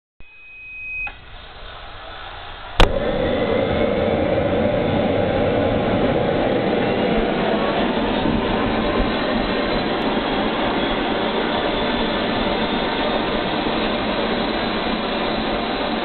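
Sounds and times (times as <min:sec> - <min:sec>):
thin high turbine tone: 0:00.2 - 0:16.0
jet turbine rushing: 0:01.2 - 0:16.0
sharp crack: 0:02.8 - 0:04.3.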